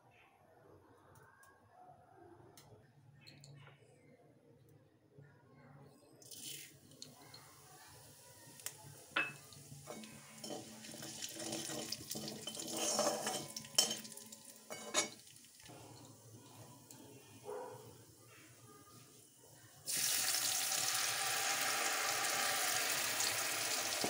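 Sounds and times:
seeds sizzling in hot oil: 6.2 - 17.3, 19.1 - 24.0
metal spatula scraping pan: 9.9 - 15.3
spatula clinks: 11.6 - 15.3.

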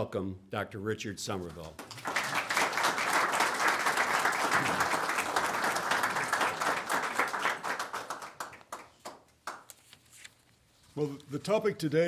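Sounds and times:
audience applauding: 1.8 - 9.7.

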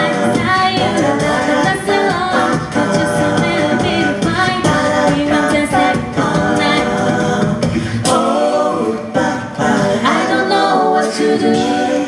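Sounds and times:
a cappella group singing: 0.0 - 12.0.

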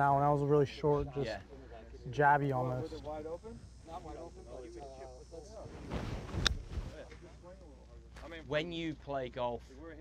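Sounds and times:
club rushing through turf: 5.6 - 7.1.

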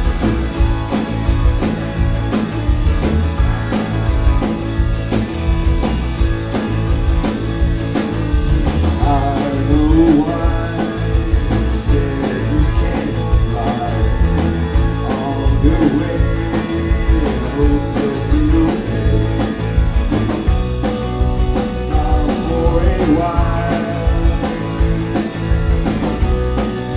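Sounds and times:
rock band playing: 0.0 - 26.9
man singing: 9.0 - 19.7, 21.6 - 24.5.

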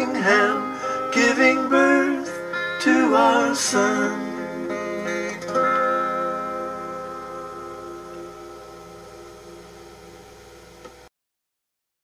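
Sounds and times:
acoustic guitar chord ringing: 0.0 - 10.7.

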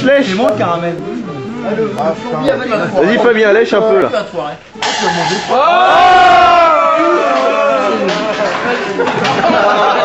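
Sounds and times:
men shouting ohhh: 5.5 - 8.4.

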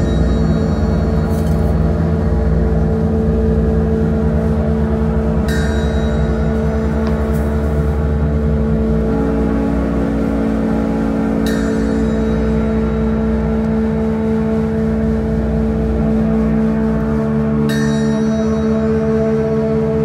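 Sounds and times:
distorted electric guitar drone: 0.0 - 20.0
low rumble: 0.0 - 20.0
ringing metallic strike: 0.0 - 20.0.

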